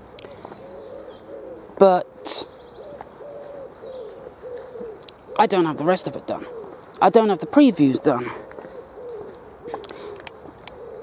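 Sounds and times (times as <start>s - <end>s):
pigeon cooing: 0.1s - 11.0s.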